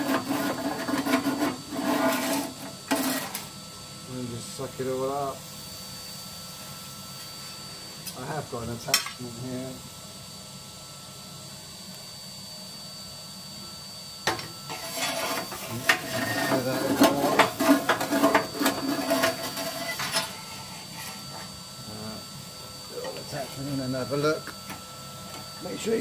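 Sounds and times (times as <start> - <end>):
vacuum cleaner running: 0.0 - 26.0.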